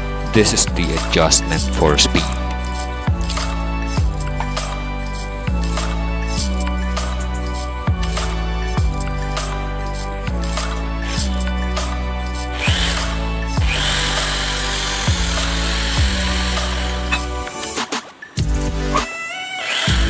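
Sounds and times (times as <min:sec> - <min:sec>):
background music with steady beat: 0:00.0 - 0:20.0
electric drill whining: 0:12.5 - 0:17.6, 0:18.9 - 0:20.0.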